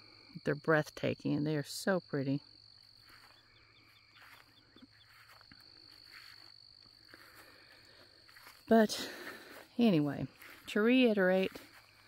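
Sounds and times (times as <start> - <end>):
high-pitched insect trill: 0.0 - 12.0
short insect chirps: 2.5 - 8.6.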